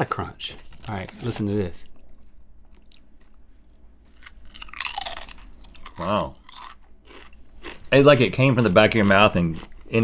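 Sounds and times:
chip crunching: 4.1s - 10.0s.

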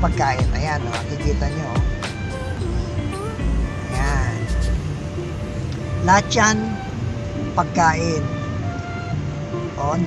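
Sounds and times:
music with deep bass beat: 0.0s - 4.9s
car driving rumble: 0.0s - 10.0s.

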